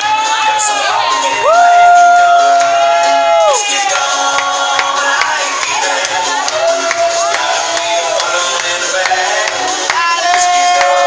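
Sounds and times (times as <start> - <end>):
latin dance music: 0.0 - 11.0
spectators cheering: 0.0 - 11.0
person whooping: 1.1 - 3.6.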